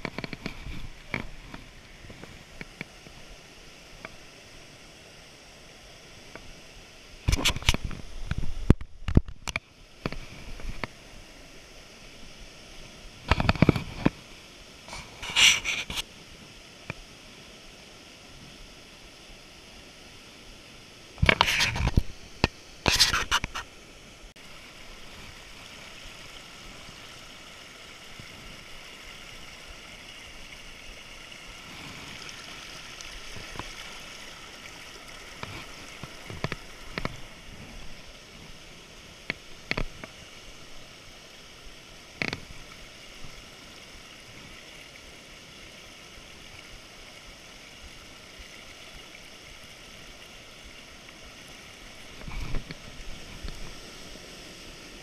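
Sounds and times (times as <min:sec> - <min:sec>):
creek and waterfall over rocks: 0:00.0 - 0:55.0.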